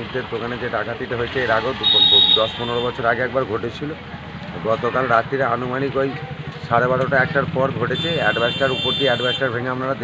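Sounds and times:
man speaking: 0:00.0 - 0:04.0, 0:04.6 - 0:10.0.

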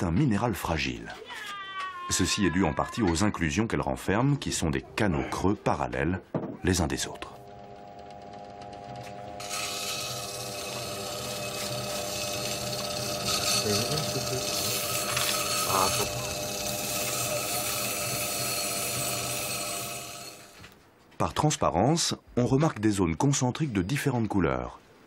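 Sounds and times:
grinding wheel humming: 0:06.8 - 0:20.6
stone grinding against wheel: 0:08.5 - 0:20.6.

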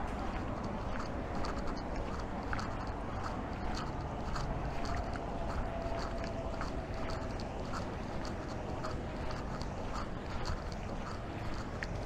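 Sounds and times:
footsteps on a path: 0:00.0 - 0:12.0.

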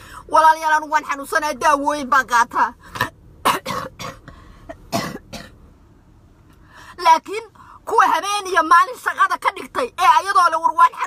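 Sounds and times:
woman coughing: 0:03.0 - 0:05.6.

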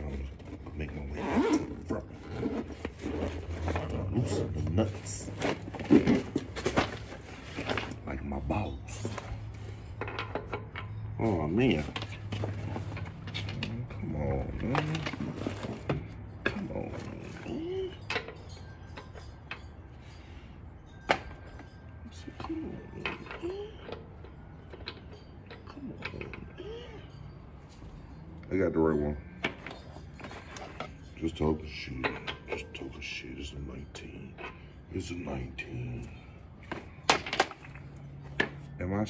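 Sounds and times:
metal clinks of tools and lug nuts: 0:00.0 - 0:39.0.

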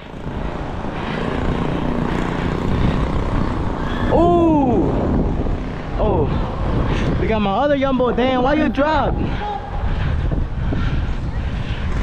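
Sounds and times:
street traffic: 0:00.0 - 0:12.0
wind buffeting microphone: 0:00.0 - 0:12.0.

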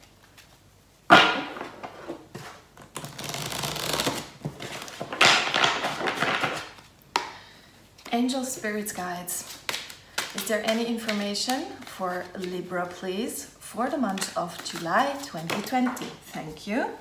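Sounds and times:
cards being shuffled: 0:01.6 - 0:06.9, 0:08.0 - 0:13.0, 0:14.1 - 0:16.5.

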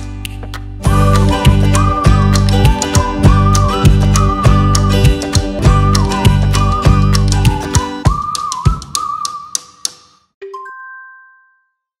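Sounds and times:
background music with clicks: 0:00.0 - 0:10.3.

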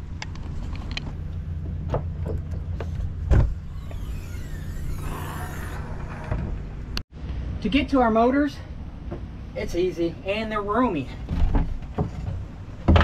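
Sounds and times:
steady low rumble: 0:00.0 - 0:10.7
faint high squeaks: 0:03.7 - 0:06.3.

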